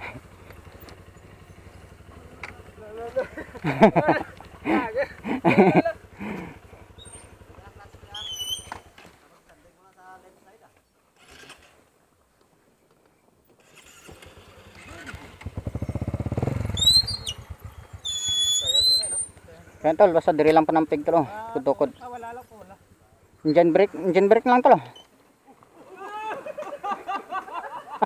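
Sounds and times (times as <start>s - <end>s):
dirt bike engine pulse: 0.0s - 9.2s, 13.6s - 25.0s
motorcycle engine: 0.0s - 9.5s, 11.1s - 11.9s, 13.4s - 25.7s
short high squeals: 7.0s - 7.3s, 8.1s - 8.9s, 13.6s - 19.4s, 24.8s - 25.2s.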